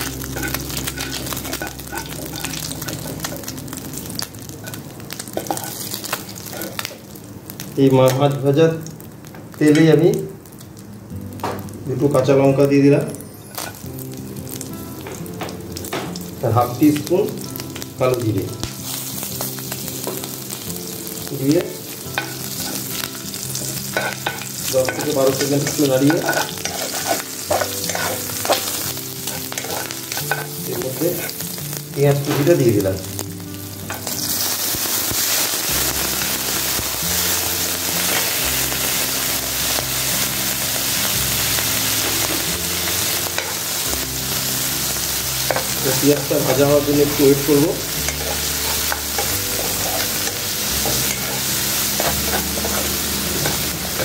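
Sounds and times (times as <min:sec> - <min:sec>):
chilies frying in oil: 0:00.0 - 0:54.0
onions sizzling in oil: 0:00.0 - 0:54.0
spatula scraping pan: 0:23.6 - 0:31.4.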